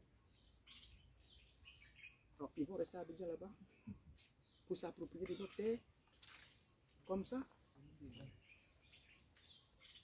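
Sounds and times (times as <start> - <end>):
faint high bird chirps: 0.0 - 10.0.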